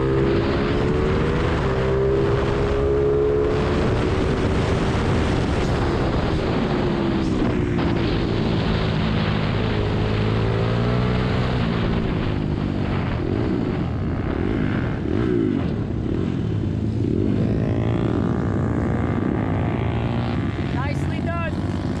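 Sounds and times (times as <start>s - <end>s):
minibike engine revving: 13.4s - 22.0s.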